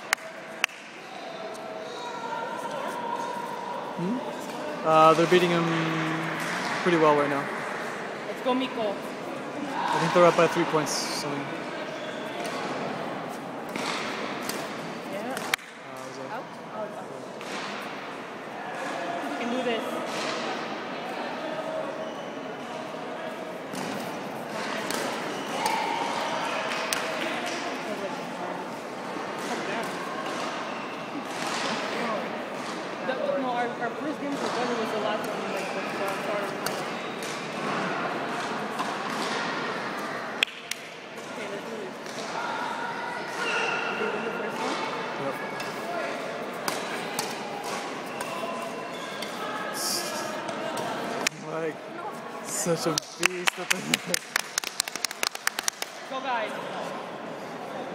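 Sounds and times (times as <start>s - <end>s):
indistinct voices in a hall: 0.0s - 57.9s
rackets hitting shuttlecock: 23.7s - 25.8s, 46.6s - 48.3s.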